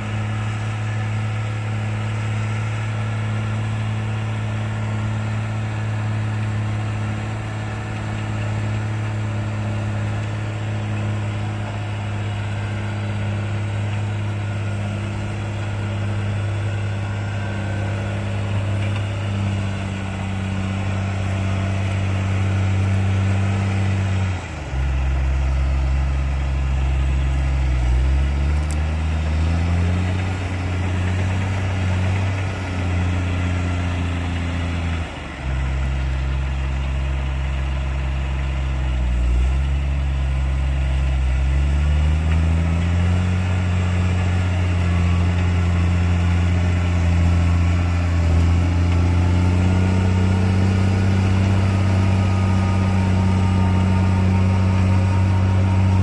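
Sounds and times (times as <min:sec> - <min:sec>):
tractor engine under load: 0:00.0 - 0:56.0.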